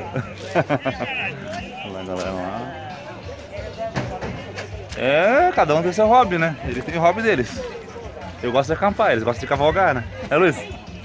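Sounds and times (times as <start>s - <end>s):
faint music: 0.0s - 11.0s
people talking: 0.0s - 11.0s.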